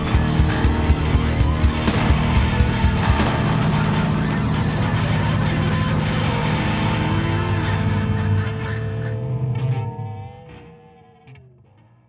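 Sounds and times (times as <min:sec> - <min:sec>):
distorted electric guitar rock music: 0:00.0 - 0:12.0.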